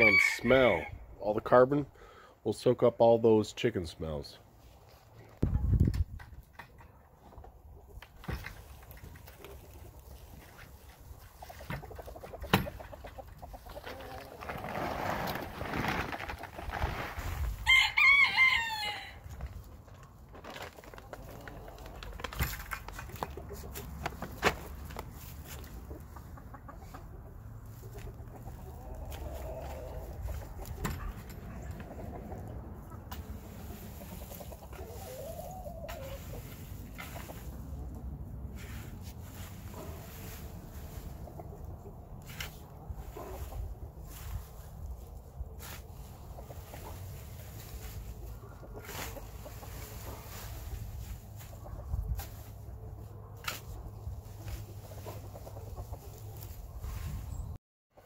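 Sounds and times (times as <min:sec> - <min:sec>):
rooster crowing: 0:00.0 - 0:00.9, 0:17.6 - 0:19.2
chickens clucking: 0:06.6 - 0:14.5, 0:21.0 - 0:38.4, 0:39.4 - 0:58.0
handling clicks and rustling: 0:19.4 - 0:25.6.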